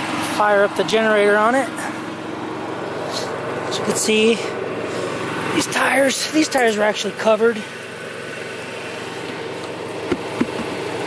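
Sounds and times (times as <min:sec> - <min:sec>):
generator running: 0:00.0 - 0:11.0.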